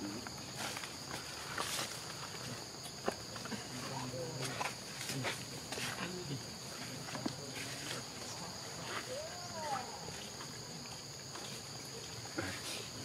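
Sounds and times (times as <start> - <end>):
high insect drone: 0.0 - 13.0.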